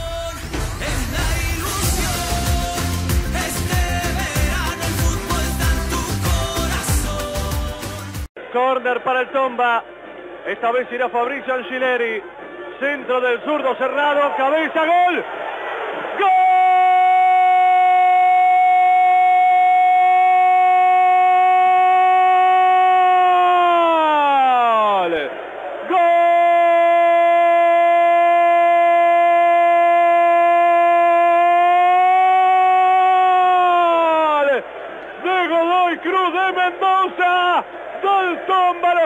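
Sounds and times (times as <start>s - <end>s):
man shouting drawn-out goal cry: 16.2s - 39.0s.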